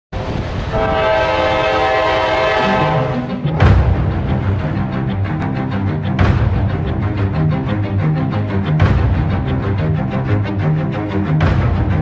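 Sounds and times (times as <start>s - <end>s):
low rumble of train: 0.2s - 12.0s
locomotive air horn chord: 0.7s - 3.5s.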